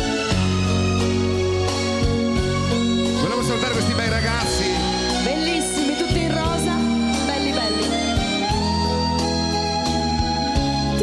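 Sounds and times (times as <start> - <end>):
bass and guitar backing: 0.0 - 11.0
harmonica playing held notes: 0.0 - 11.0.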